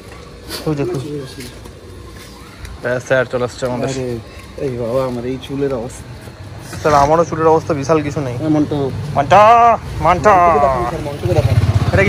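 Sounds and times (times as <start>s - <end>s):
motorcycle engine idling: 9.5s - 12.0s.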